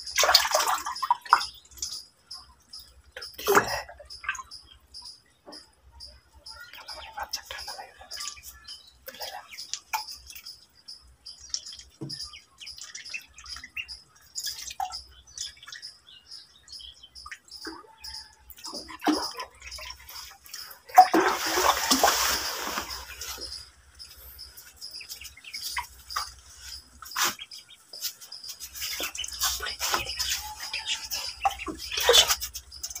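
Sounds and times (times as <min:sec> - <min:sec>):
water splashing: 0:00.0 - 0:01.9, 0:18.6 - 0:33.0
ducklings peeping: 0:06.6 - 0:33.0.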